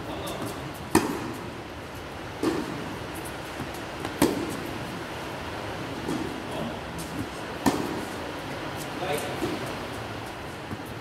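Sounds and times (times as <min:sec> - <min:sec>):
tennis racket hitting ball: 0:00.8 - 0:01.4, 0:02.4 - 0:02.8, 0:04.0 - 0:04.6, 0:07.6 - 0:08.2.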